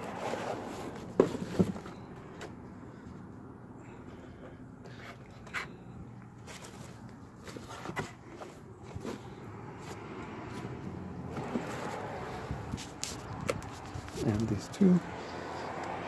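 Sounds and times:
rustling fabric and cardboard: 0.0s - 2.0s, 6.3s - 14.6s.

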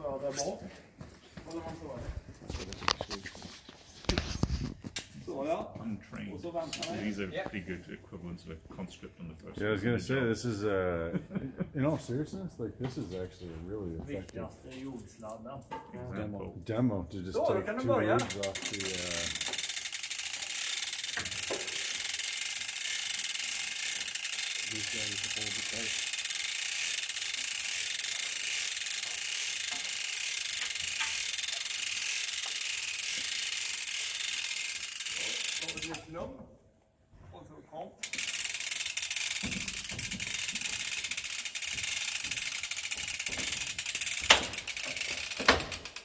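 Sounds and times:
winch ratchet clicking rapidly: 6.6s - 7.1s, 18.2s - 36.0s, 38.0s - 46.0s
metallic clicks and knocks: 41.7s - 46.0s.

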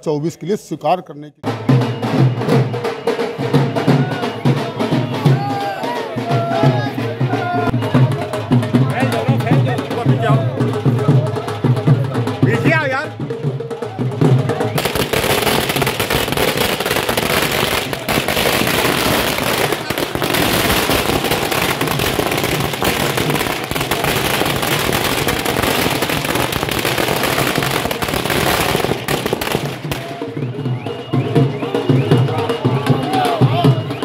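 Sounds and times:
firecrackers going off: 14.4s - 32.0s.

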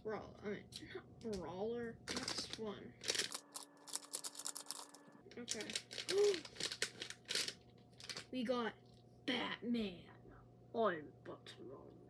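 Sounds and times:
foil packet crinkling: 2.1s - 8.4s.

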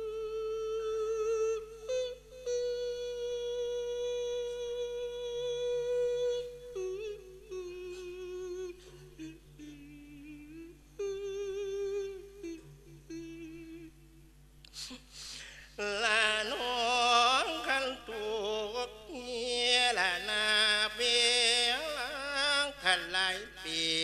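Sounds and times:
man chanting into a microphone: 14.8s - 24.0s.

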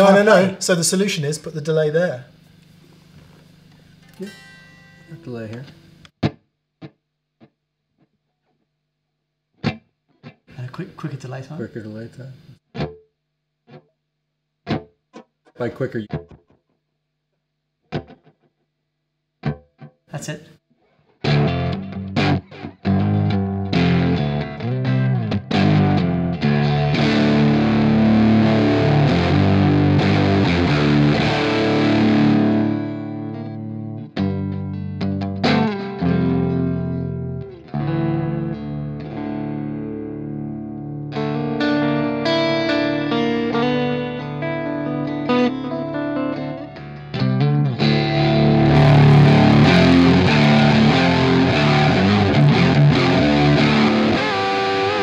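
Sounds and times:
electric guitar with fuzz distortion: 0.0s - 8.6s, 17.8s - 18.5s, 19.4s - 55.0s.

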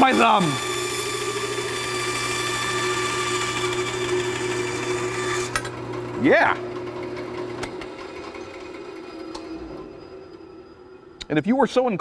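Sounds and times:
bandsaw cutting: 0.0s - 9.6s.

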